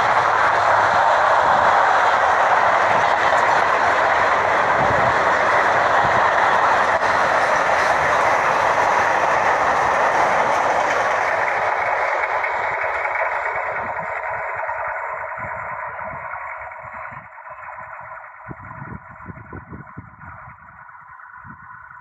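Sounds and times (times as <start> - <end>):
freight wagons rolling on rails: 0.0 - 22.0.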